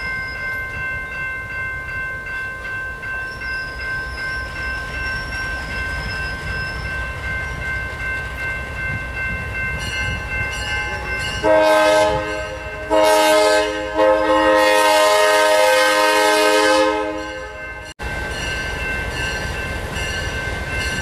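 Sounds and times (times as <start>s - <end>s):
crossing bell ringing: 0.0s - 21.0s
locomotive horn blast: 10.9s - 17.7s.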